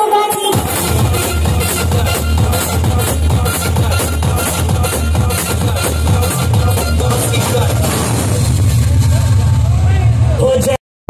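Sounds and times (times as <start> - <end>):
loud dj music with heavy bass: 0.0 - 10.8.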